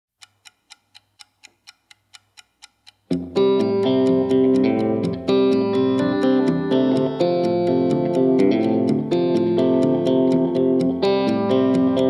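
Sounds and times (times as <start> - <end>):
clock ticking: 0.2 - 12.0.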